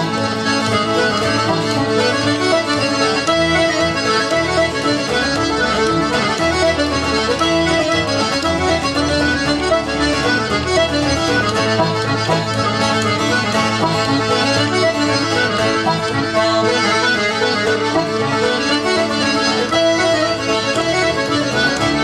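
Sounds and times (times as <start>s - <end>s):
accordion playing reel: 0.0s - 22.0s
acoustic guitar strumming: 0.0s - 22.0s.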